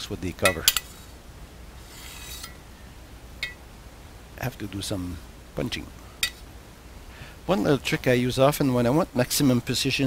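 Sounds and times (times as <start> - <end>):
scriber scraping metal: 0.6 - 1.2, 1.8 - 2.7.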